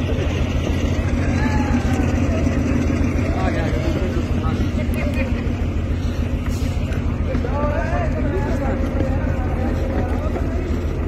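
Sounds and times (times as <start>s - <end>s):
low engine-like drone: 0.0s - 11.0s.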